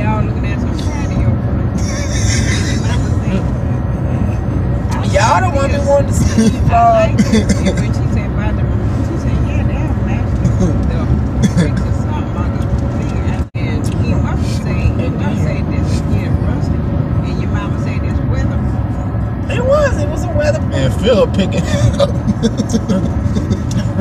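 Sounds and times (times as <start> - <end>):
car road and engine rumble: 0.0 - 24.0
quiet voices: 0.6 - 8.2, 19.5 - 24.0.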